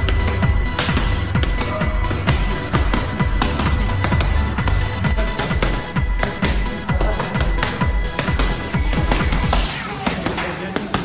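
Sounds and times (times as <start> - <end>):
boxing gloves smacking focus mitts: 0.0 - 11.0
electronic music with heavy bass: 0.0 - 11.0.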